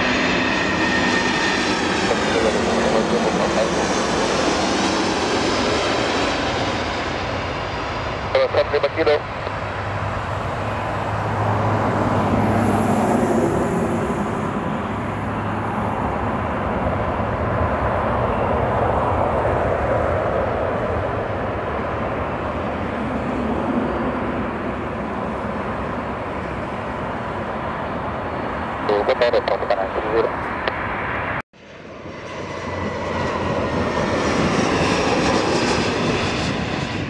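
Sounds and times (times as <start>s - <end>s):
jet engines roaring: 0.0s - 37.0s.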